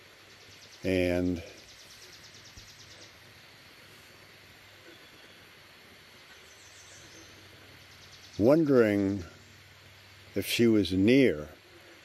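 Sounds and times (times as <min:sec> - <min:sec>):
faint outdoor background noise: 0:00.0 - 0:12.0.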